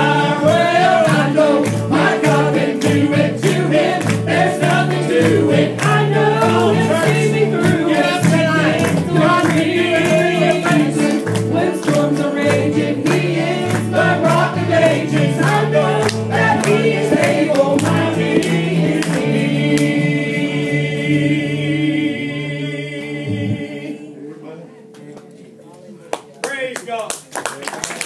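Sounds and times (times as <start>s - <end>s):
gospel group singing in harmony: 0.0s - 24.5s.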